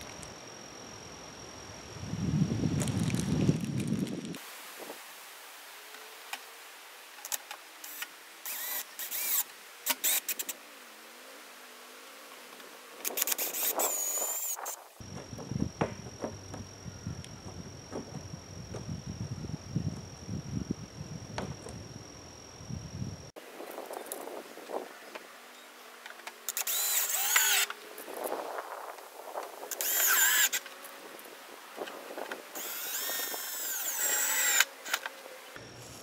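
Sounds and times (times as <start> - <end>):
cordless drill driving screws: 7.9 - 10.4, 26.5 - 27.8, 29.7 - 30.6, 32.6 - 35.1.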